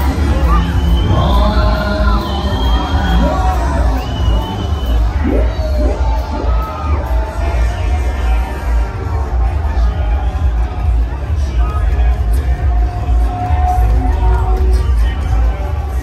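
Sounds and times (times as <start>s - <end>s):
people shouting: 0.0s - 10.3s
crowd noise: 0.0s - 16.0s
loud music with heavy bass: 0.0s - 16.0s.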